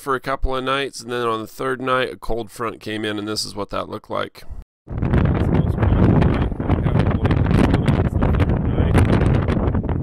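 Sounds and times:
gusty wind buffeting microphone: 4.9 - 10.0.

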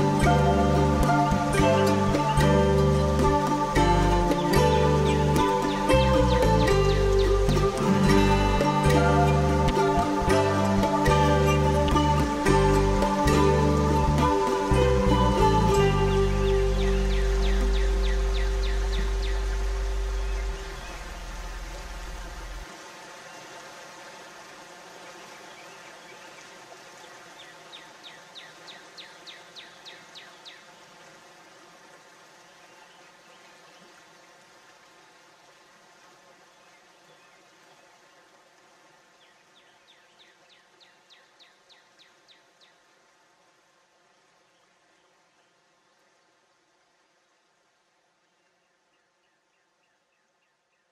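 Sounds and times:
instrumental soundtrack: 0.0 - 22.6
faint steady hiss: 0.0 - 50.9
outdoor background: 0.0 - 50.9.

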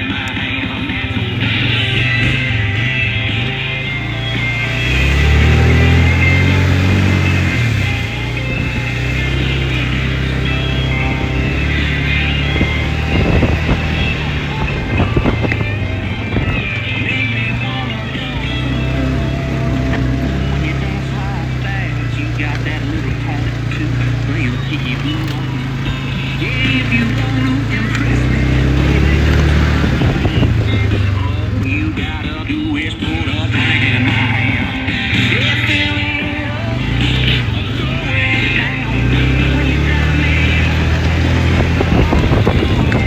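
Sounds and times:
atv engine running: 0.0 - 43.0
song with singing: 0.0 - 43.0.

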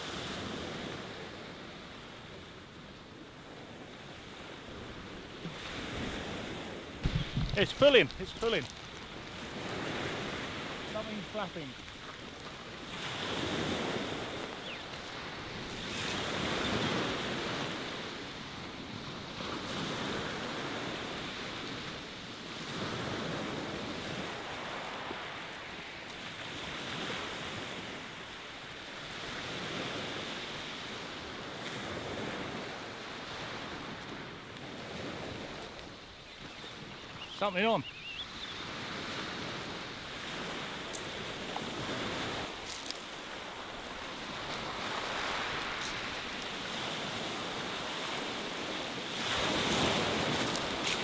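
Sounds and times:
waves breaking on shingle beach: 0.0 - 51.0.

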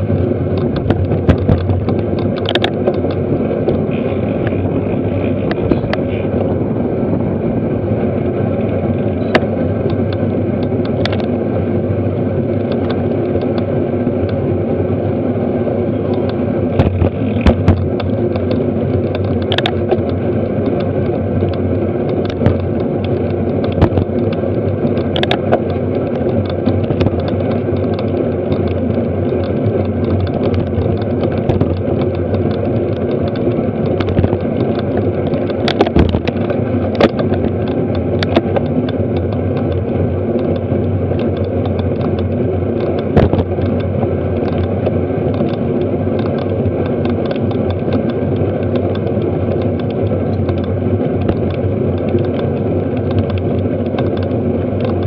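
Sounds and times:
bikes clicking and knocking: 0.0 - 55.0
road rumble: 0.0 - 55.0
wind: 0.0 - 55.0.

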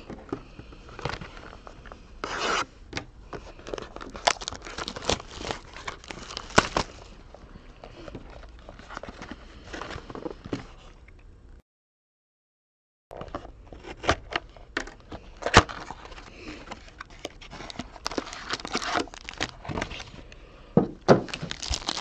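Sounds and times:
cardboard rustling rip: 4.0 - 7.0, 17.6 - 20.0, 21.1 - 22.0.

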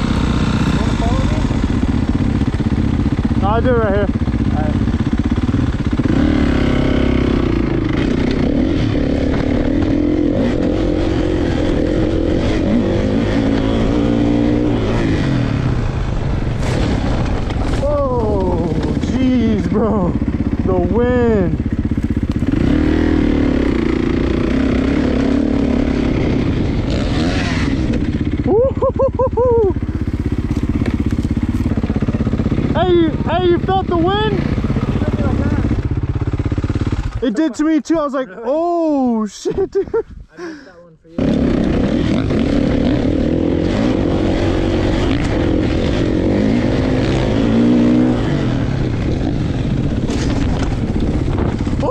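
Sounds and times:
dirt bike engine revving: 0.0 - 39.8, 40.4 - 51.9.

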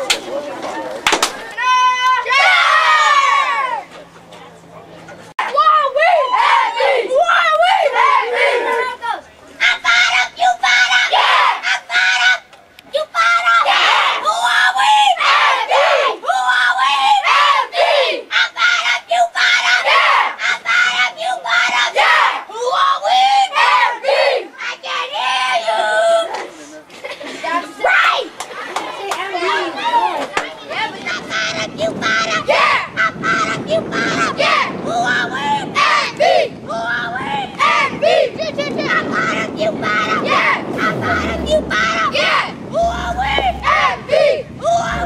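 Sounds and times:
boys shouting and cheering: 1.4 - 3.9.

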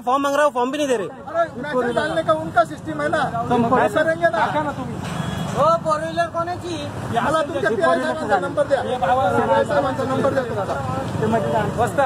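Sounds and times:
men arguing loudly: 0.0 - 12.0
street traffic noise: 0.0 - 12.0.

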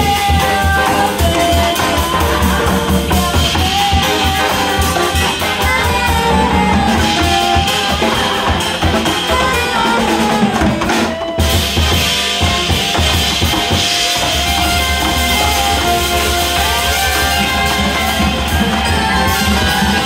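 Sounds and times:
drum kit beat: 0.0 - 20.0
guitar: 0.0 - 20.0
horn section playing: 0.0 - 20.0
piano: 0.0 - 20.0.

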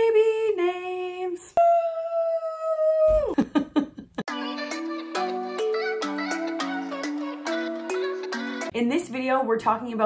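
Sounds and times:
woman laughing: 3.0 - 4.3.

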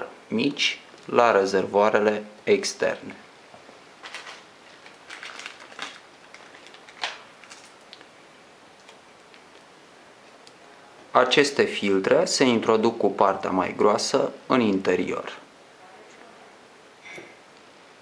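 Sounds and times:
plastic rustling: 2.9 - 8.2, 8.8 - 10.5.

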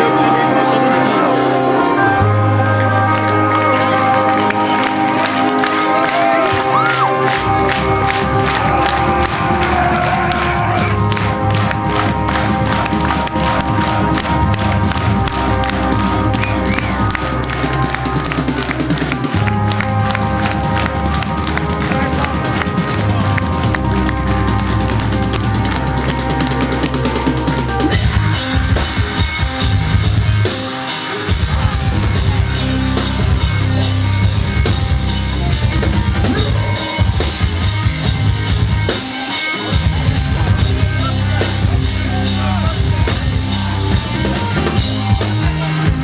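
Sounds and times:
low bass line: 0.0 - 30.7, 31.3 - 39.0, 39.7 - 46.0
electric guitars: 0.0 - 46.0
metalcore band playing live: 0.0 - 46.0.

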